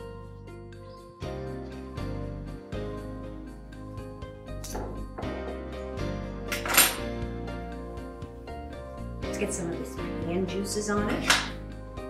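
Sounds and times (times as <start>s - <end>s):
background music: 0.0s - 12.0s
metal utensils clattering on dishes: 6.5s - 7.1s.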